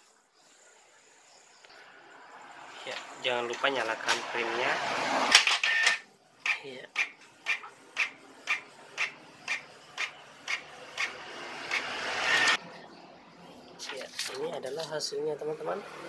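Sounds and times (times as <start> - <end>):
printer paper feed whir: 7.3 - 12.6.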